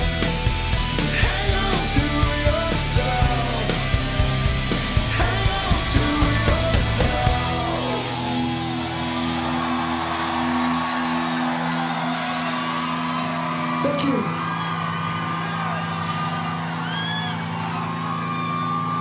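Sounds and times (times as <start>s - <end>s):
crowd cheering and whooping: 3.0s - 19.0s.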